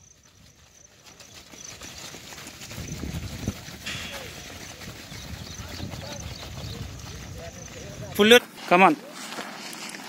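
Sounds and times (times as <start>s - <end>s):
many runners' footfalls on dirt: 0.0s - 10.0s.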